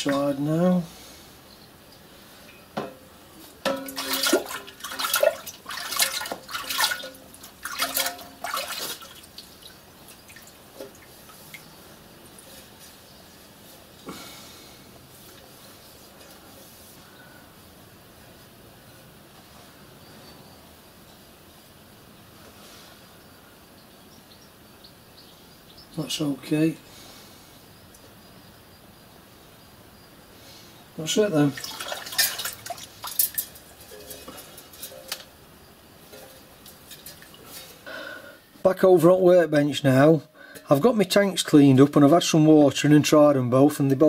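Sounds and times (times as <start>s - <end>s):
water splashing in plastic bowl: 3.6s - 11.6s, 31.4s - 35.2s.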